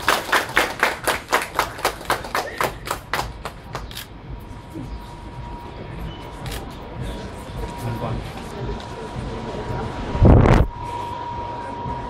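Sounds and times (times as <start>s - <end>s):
people applauding: 0.0s - 4.1s.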